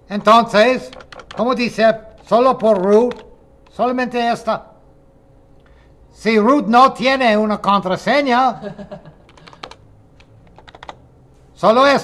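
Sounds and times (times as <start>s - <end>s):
computer keyboard key clicks: 0.9s - 1.4s, 2.2s - 3.3s, 9.3s - 11.0s.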